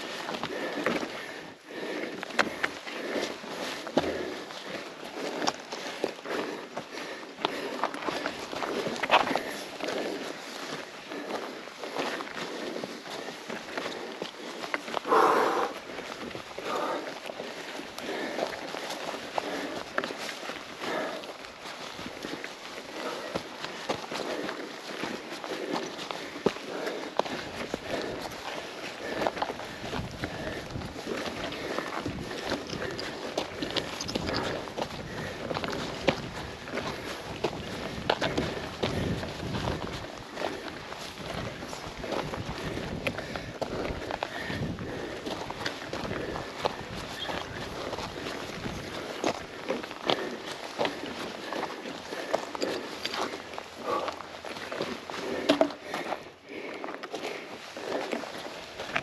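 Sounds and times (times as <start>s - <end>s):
hard breathing: 0.0s - 59.0s
tyres crunching on gravel and rock: 0.0s - 59.0s.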